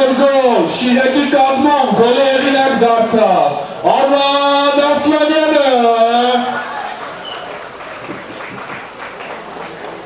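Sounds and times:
open-air background noise: 0:00.0 - 0:10.0
scattered clapping: 0:06.6 - 0:10.0.

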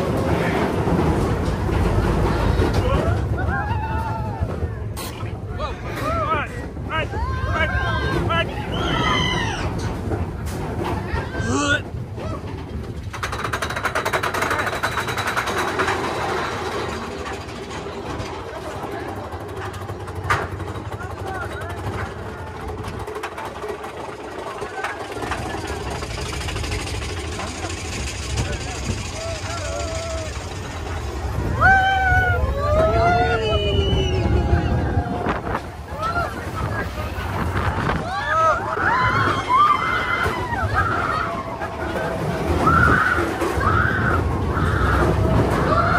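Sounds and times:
roller coaster rumbling on track: 0:00.0 - 0:45.9
riders yelling and whooping: 0:02.3 - 0:04.9, 0:05.5 - 0:10.0, 0:24.2 - 0:45.9.

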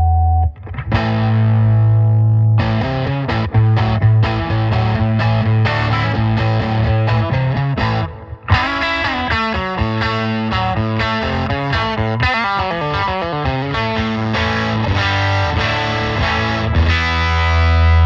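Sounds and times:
electric guitar chords and notes: 0:00.0 - 0:18.0.

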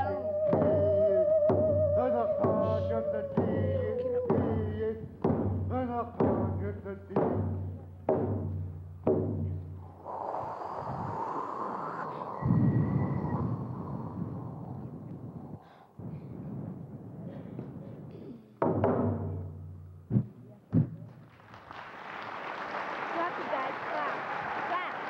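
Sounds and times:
frame drum beats: 0:00.0 - 0:10.0, 0:16.0 - 0:21.2
background noise: 0:00.0 - 0:25.0.

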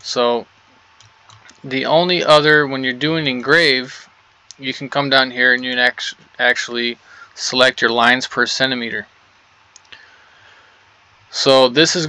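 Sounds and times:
low background hiss: 0:00.0 - 0:12.0
computer mouse clicking: 0:01.0 - 0:01.7.

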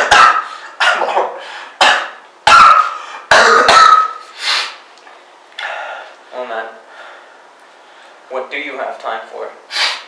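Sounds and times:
person coughing: 0:00.0 - 0:04.2.

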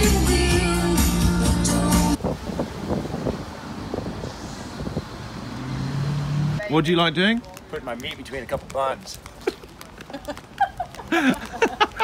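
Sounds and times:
music: 0:00.0 - 0:02.2
car and traffic noise: 0:02.1 - 0:09.6.

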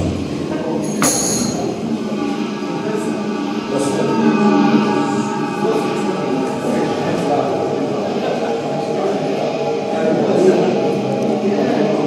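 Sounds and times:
high squealing tones: 0:02.0 - 0:08.2.

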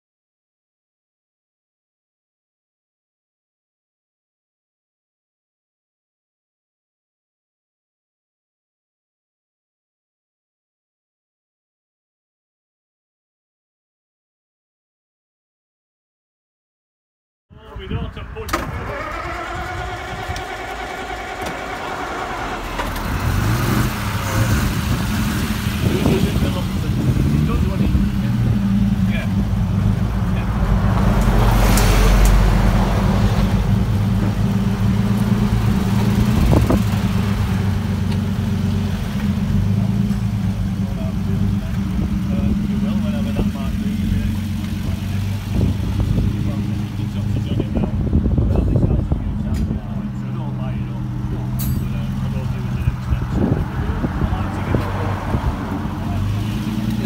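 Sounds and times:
car engine idling: 0:18.0 - 0:57.0.

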